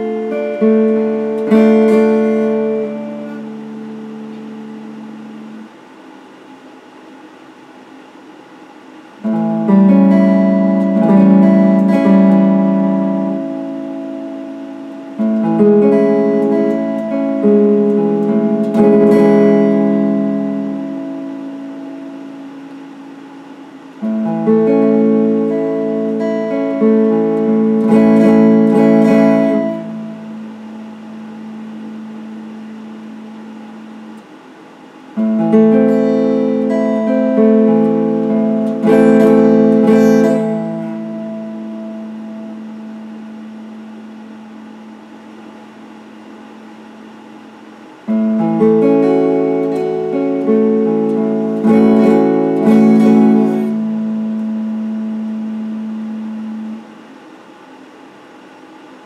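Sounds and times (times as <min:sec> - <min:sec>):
electric guitar chord ringing: 0:00.0 - 0:06.0, 0:09.2 - 0:57.4
faint background hiss: 0:00.0 - 0:59.0.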